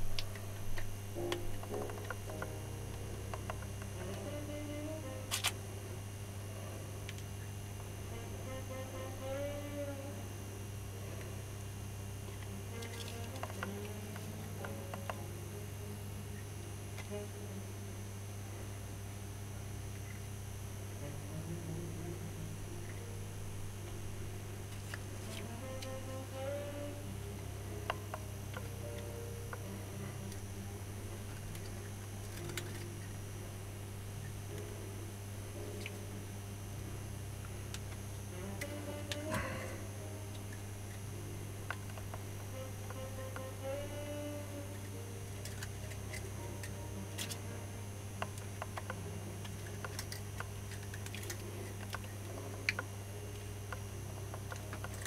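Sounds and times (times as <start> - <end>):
steady electrical hum: 0.0 - 55.0.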